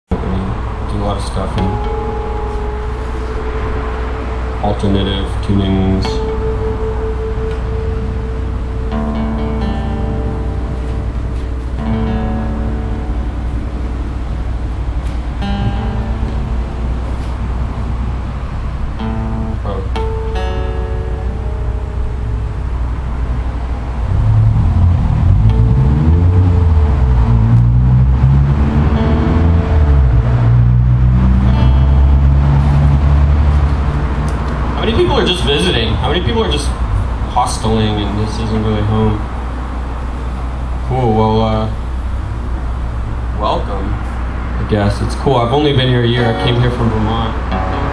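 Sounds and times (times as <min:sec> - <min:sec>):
low rumble rising and falling: 0:00.1 - 0:47.9
acoustic guitar notes plucked: 0:01.4 - 0:36.3, 0:46.1 - 0:47.9.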